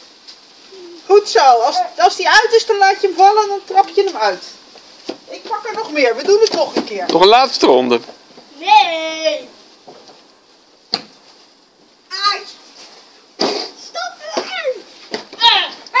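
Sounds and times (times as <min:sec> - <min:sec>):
children calling out: 0:13.7 - 0:16.0.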